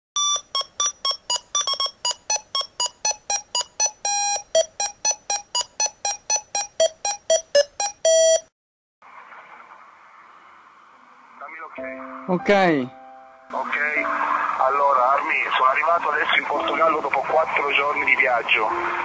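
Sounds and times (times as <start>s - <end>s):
electronic beep tune: 0.2s - 8.5s.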